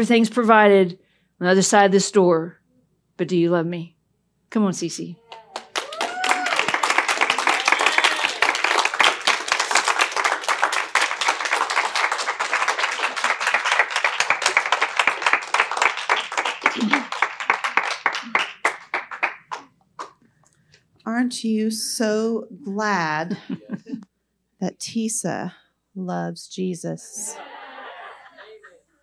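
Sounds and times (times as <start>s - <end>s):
audience clapping: 5.3s - 20.2s.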